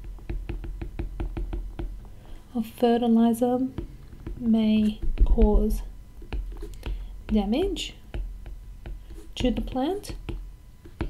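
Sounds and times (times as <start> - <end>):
stylus tapping on tablet screen: 0.0 - 1.9, 3.8 - 11.0.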